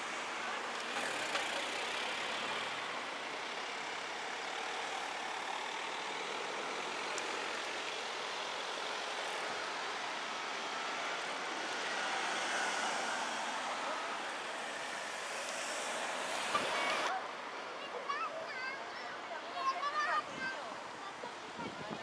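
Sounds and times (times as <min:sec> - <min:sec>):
slow cars rolling past: 0:00.0 - 0:21.5.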